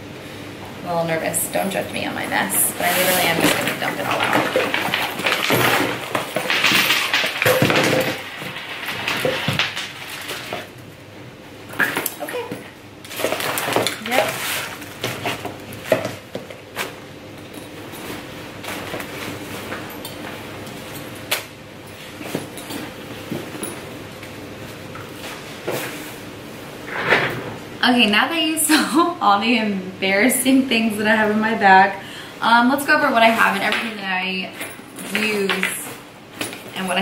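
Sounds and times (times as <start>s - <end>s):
plastic tubs clattering on table: 2.8s - 10.7s.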